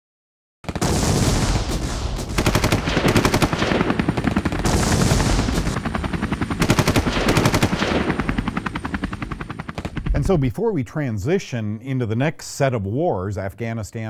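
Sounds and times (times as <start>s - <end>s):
automatic gunfire bursts: 0.7s - 5.8s, 6.4s - 8.6s.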